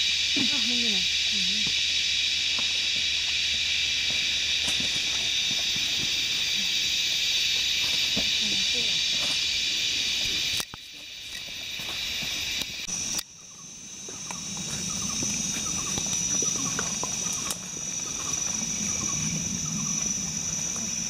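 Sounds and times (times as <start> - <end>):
cicada chorus drone: 0.0 - 21.0
quiet forest ambience: 0.0 - 21.0.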